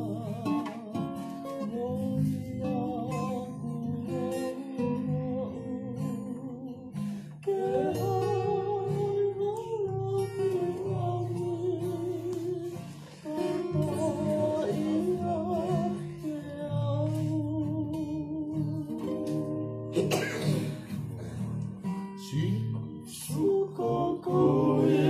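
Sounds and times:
strummed acoustic guitars: 0.0 - 25.0
men singing in harmony: 7.4 - 17.2, 23.1 - 25.0.

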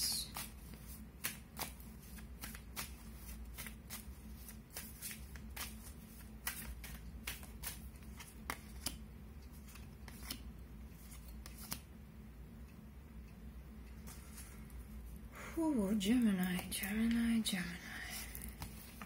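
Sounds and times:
low steady hum: 0.0 - 19.0
cards shuffled by hand: 0.1 - 11.9, 16.4 - 19.0.

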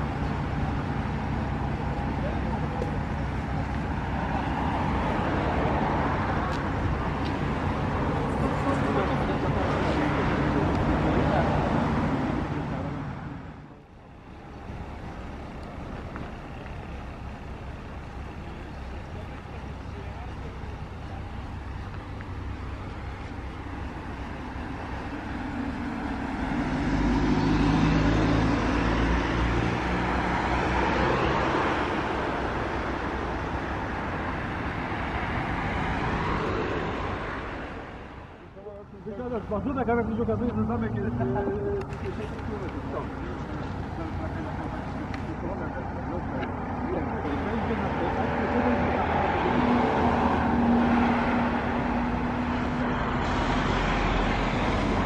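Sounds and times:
bus diesel engine running: 0.0 - 55.0.

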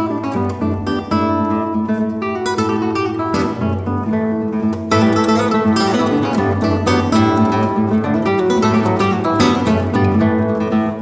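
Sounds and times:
classical guitar duet: 0.0 - 11.0.

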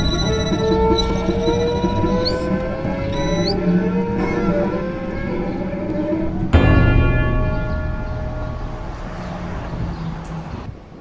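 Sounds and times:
city traffic rumble: 0.0 - 11.0
sustained music chord: 4.7 - 10.1.

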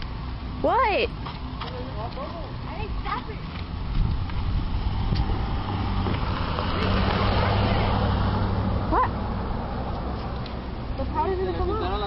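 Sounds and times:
car engine roaring: 0.0 - 12.0.

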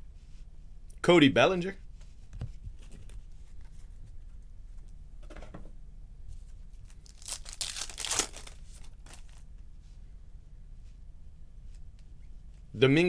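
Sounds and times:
wrapper tearing and crinkling: 6.8 - 9.4.

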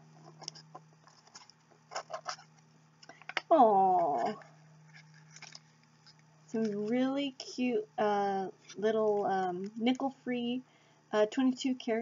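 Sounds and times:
small box scratching and clicking: 0.1 - 3.2, 4.2 - 7.0.

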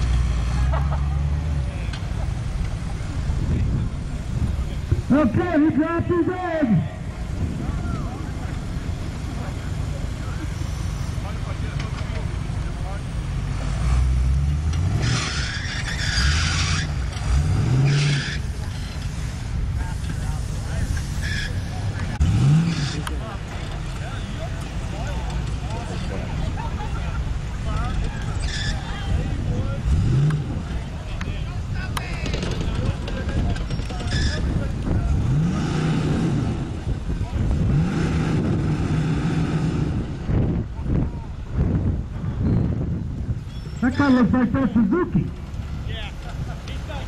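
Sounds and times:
off-road engine revving: 0.0 - 42.3, 43.7 - 47.0.

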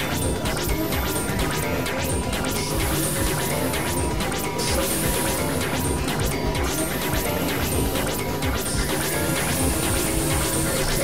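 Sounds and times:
harsh synthesizer noise music: 0.0 - 11.0
thin steady tone: 0.0 - 11.0.

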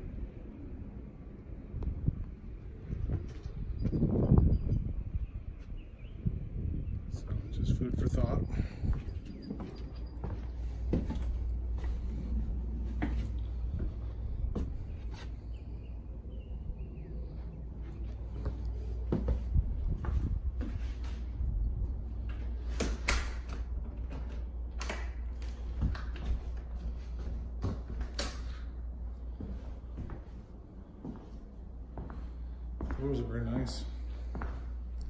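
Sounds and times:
steady low rumble: 0.0 - 35.0.

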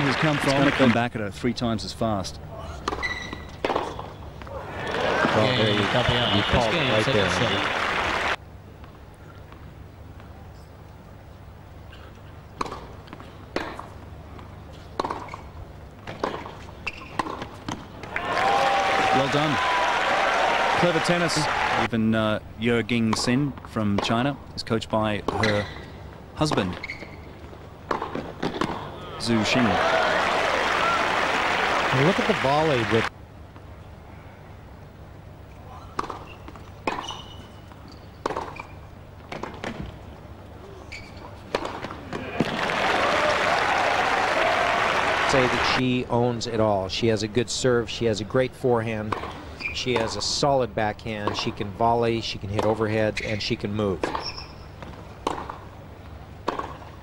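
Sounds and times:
crowd applause and cheering: 0.0 - 1.0, 4.6 - 8.4, 18.0 - 21.9, 29.2 - 33.1, 42.2 - 45.8
shoe squeaks on court: 2.9 - 3.6, 16.8 - 17.3, 26.8 - 27.4, 36.0 - 39.0, 40.8 - 41.4, 49.6 - 49.9, 54.0 - 54.8
tennis ball hit by rackets: 15.0 - 15.4, 36.0 - 37.1, 38.2 - 38.7, 41.5 - 42.6, 54.0 - 55.6, 56.4 - 56.9
tennis ball struck by rackets: 38.2 - 38.6, 54.8 - 55.6, 56.4 - 56.8.

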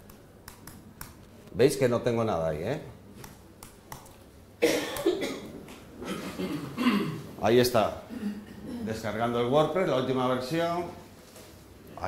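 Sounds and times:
person coughing: 4.6 - 7.3, 8.1 - 9.0.

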